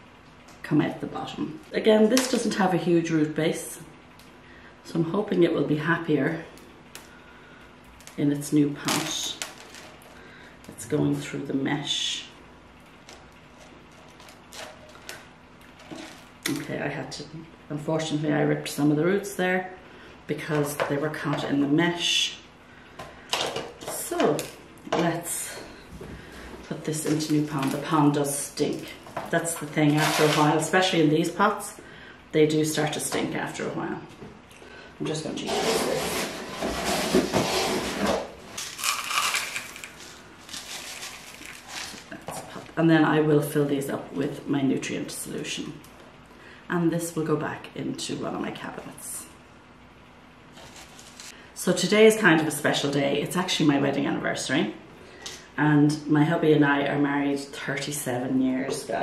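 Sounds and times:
gritty grains pouring into pot: 0:38.6 - 0:42.1
roots tearing with rustling crackle: 0:38.6 - 0:42.2.

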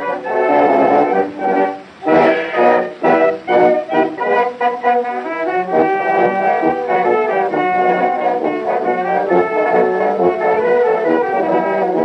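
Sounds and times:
brass band playing a march: 0:00.0 - 0:12.0.

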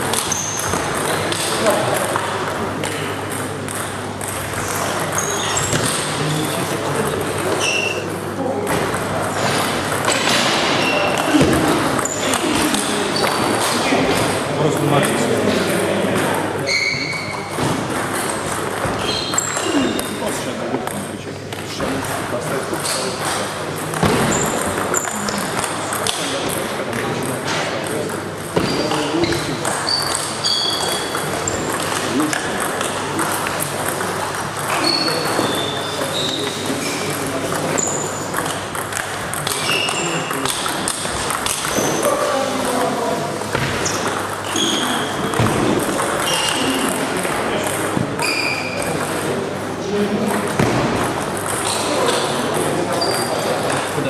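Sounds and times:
table tennis balls clicking: 0:00.0 - 0:16.4, 0:17.1 - 0:49.4, 0:50.0 - 0:54.0
chatter of voices: 0:00.0 - 0:54.0.

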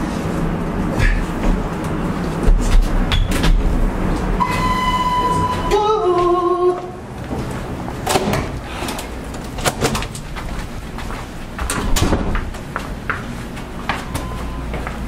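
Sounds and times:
footsteps in a hallway: 0:00.0 - 0:15.0
steady low hum: 0:00.0 - 0:15.0
push-bar door clunking open: 0:11.7 - 0:12.5.

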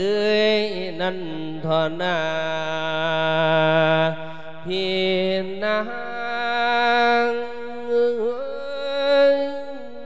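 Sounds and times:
monk chanting melodically: 0:00.0 - 0:10.0.

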